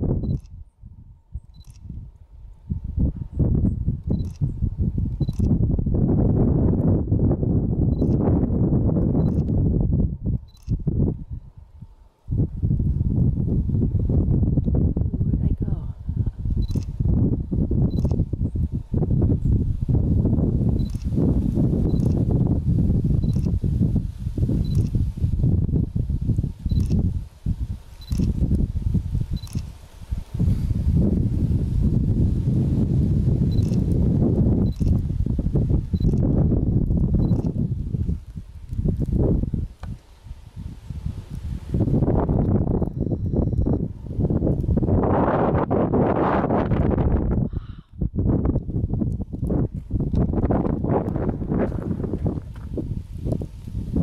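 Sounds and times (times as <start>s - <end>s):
wind buffeting microphone: 0.0s - 54.0s
faint high clicks: 1.5s - 2.0s, 4.0s - 4.5s, 10.4s - 10.8s, 21.9s - 22.2s, 29.4s - 29.7s, 34.6s - 35.1s.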